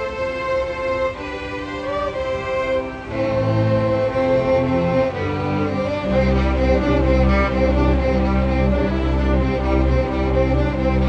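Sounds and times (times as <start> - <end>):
lower strings playing: 0.0 - 11.0
violins holding bowed notes: 0.0 - 11.0.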